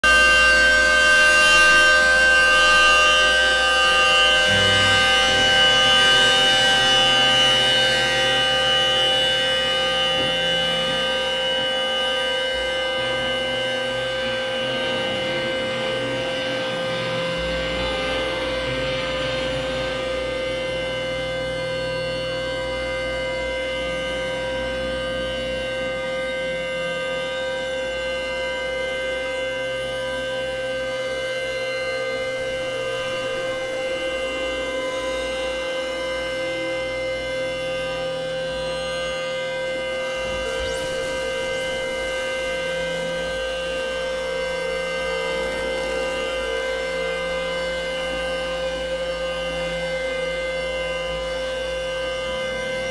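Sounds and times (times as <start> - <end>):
synthesizer drone: 0.0 - 52.9
low bass notes: 3.6 - 11.4.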